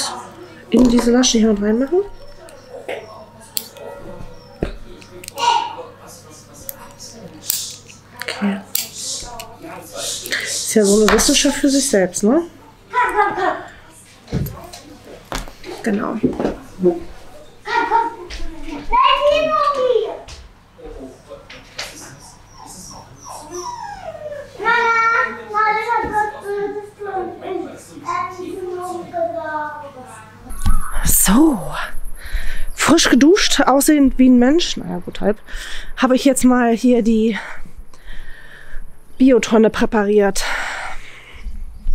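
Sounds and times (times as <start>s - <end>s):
puppy whimpering: 2.2s - 4.6s, 22.1s - 24.9s.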